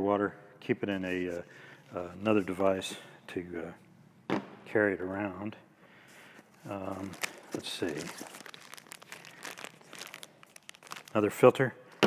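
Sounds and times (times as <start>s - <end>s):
plastic wrapper crinkling: 6.4s - 11.5s.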